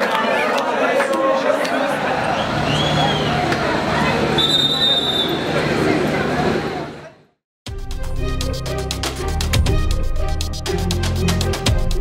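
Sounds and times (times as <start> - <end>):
crowd chatter: 0.0 - 7.3.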